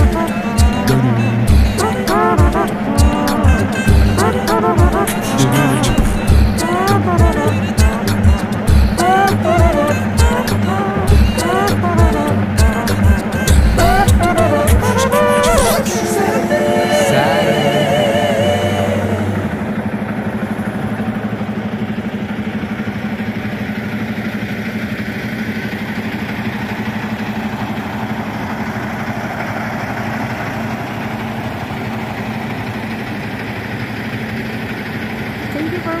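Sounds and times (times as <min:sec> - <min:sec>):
song with singing: 0:00.0 - 0:19.9
diesel truck engine idling: 0:00.0 - 0:36.0.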